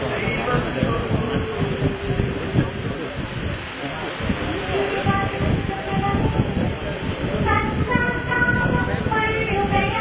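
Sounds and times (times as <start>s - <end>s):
crowd murmur: 0.0s - 10.0s.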